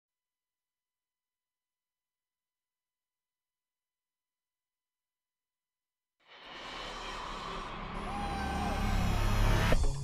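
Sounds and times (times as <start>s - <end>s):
high whistle sliding down: 7.9s - 9.8s.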